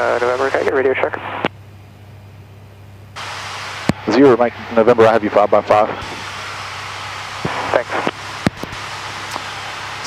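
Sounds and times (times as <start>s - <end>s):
aircraft engine and propeller drone: 0.0s - 10.0s.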